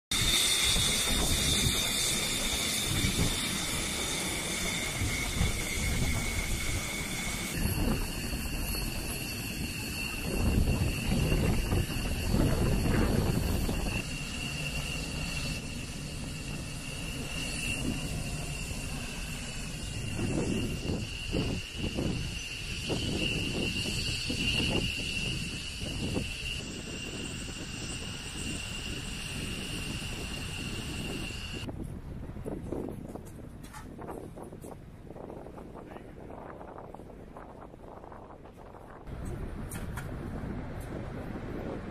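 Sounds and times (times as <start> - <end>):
jet turbine whine: 0.1 - 31.7
wind buffeting microphone: 4.6 - 14.0, 19.8 - 41.9.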